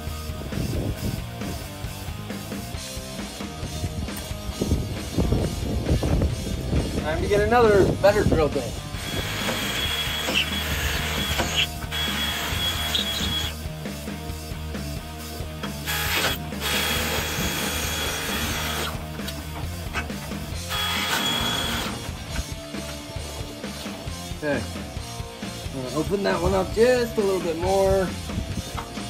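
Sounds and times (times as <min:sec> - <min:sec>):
cordless drill boring through steel: 0:09.0 - 0:13.6, 0:15.8 - 0:19.0, 0:20.6 - 0:22.2.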